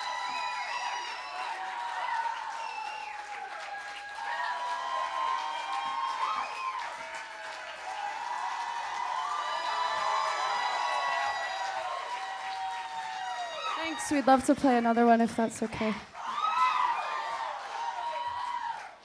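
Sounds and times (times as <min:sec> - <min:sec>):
voices whooping: 0:00.0 - 0:14.3, 0:16.2 - 0:19.0
crowd clapping and cheering: 0:00.0 - 0:19.0.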